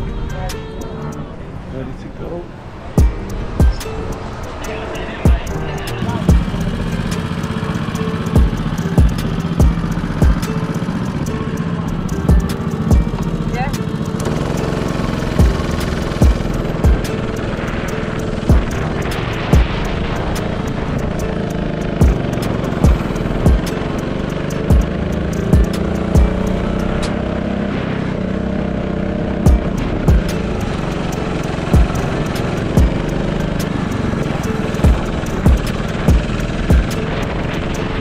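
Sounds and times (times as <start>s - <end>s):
drill instrumental beat: 0.0s - 1.4s, 2.9s - 27.4s, 29.4s - 38.0s
go-kart engine revving: 2.6s - 38.0s.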